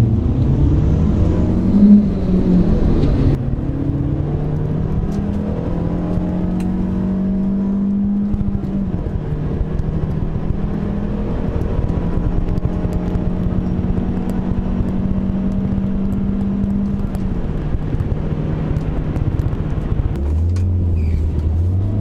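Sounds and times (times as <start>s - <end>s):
car engine from inside cabin: 0.0s - 22.0s.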